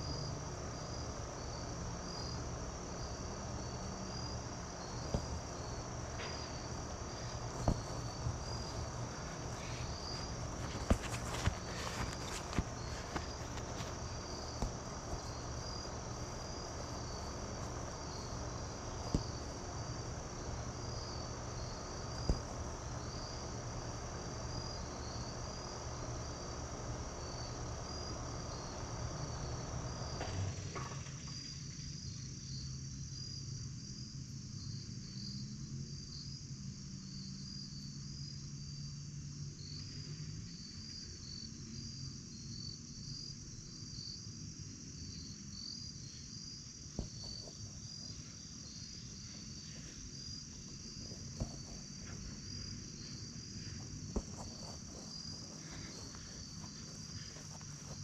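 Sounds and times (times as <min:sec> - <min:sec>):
low steady hum: 0:00.0 - 0:32.5, 0:46.0 - 0:58.0
crickets chirping: 0:00.0 - 0:58.0.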